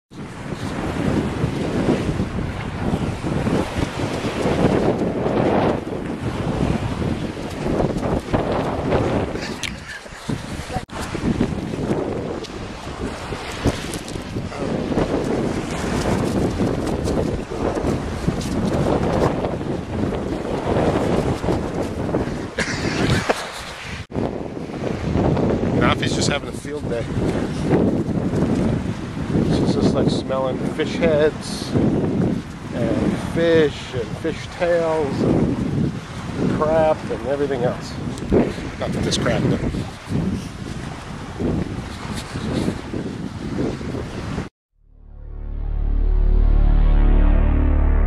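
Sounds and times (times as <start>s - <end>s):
wind buffeting microphone: 0.1s - 44.5s.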